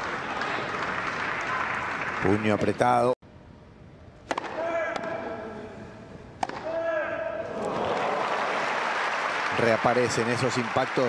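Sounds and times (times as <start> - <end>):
tennis ball struck by racket: 4.2 - 5.2, 6.4 - 6.7.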